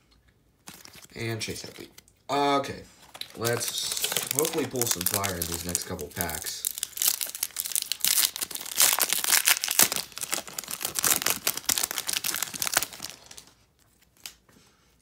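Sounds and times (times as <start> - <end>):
wrappers torn and crinkled: 0.6 - 2.0, 3.0 - 14.4.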